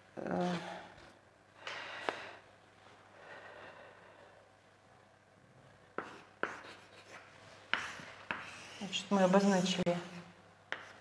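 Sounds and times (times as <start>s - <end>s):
chalk tapping on blackboard: 6.0s - 8.8s, 10.7s - 11.0s.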